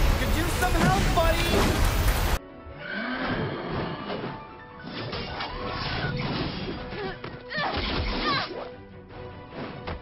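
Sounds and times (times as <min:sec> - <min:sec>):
fight scene soundtrack music: 0:04.0 - 0:10.0.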